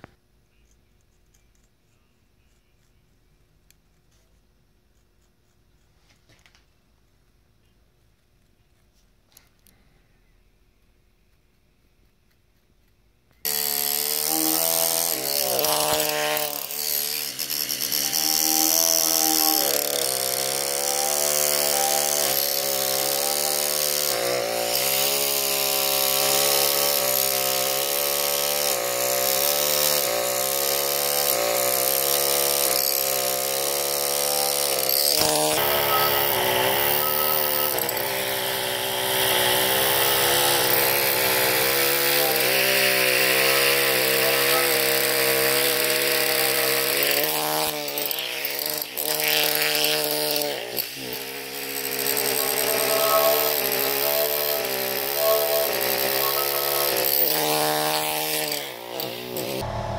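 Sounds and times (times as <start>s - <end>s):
pneumatic hammer carving stone: 13.4s - 59.9s.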